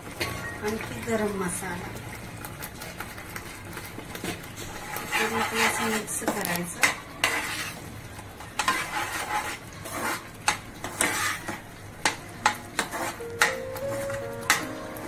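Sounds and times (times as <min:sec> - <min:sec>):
paste sizzling: 0:00.4 - 0:15.0
metal spoon scraping pan: 0:04.2 - 0:14.6.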